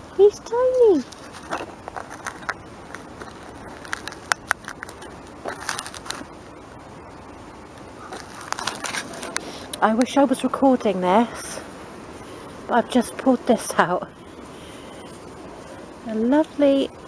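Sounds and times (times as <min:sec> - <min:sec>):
sharp clicks and crackles: 0:01.0 - 0:06.4, 0:07.7 - 0:10.1.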